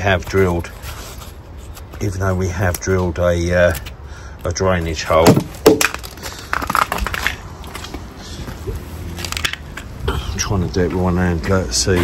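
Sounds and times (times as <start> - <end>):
footsteps on tarmac: 4.8 - 12.0.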